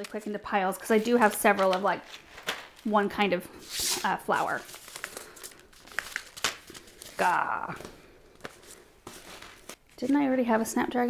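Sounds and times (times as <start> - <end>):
faint paper rustling: 0.9 - 10.6.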